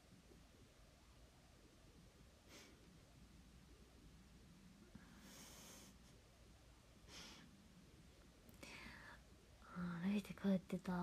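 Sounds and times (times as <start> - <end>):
woman whispering: 8.6 - 11.0
woman speaking: 9.6 - 11.0.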